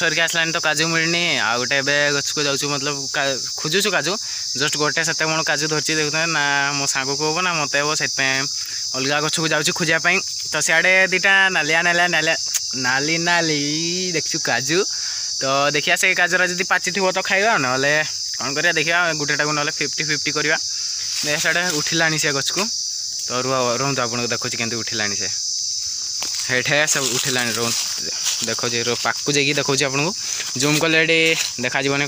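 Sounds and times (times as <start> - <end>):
man talking: 0.0 - 25.4, 26.4 - 32.0
high-pitched insect chorus: 0.0 - 32.0.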